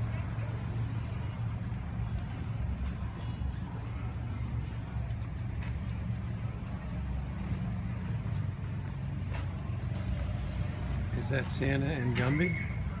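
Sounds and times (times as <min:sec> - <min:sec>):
street low rumble: 0:00.0 - 0:13.0.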